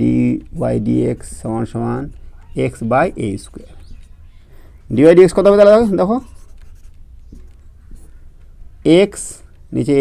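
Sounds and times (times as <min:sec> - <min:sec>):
marker pen on whiteboard: 0:00.0 - 0:10.0.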